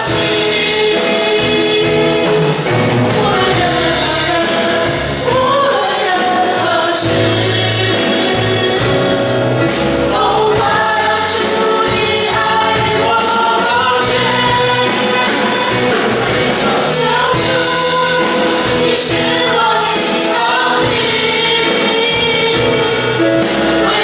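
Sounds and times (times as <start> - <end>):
choir singing gospel song: 0.0 - 24.0
steady beat accompaniment: 0.0 - 24.0.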